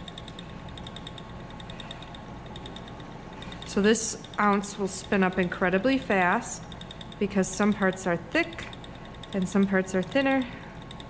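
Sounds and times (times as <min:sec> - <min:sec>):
spinning wheel whirring and ticking: 0:00.0 - 0:11.0.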